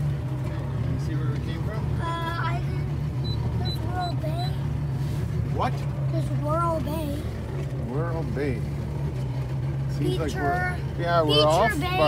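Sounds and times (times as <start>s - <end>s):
motorboat engine droning: 0.0s - 12.0s.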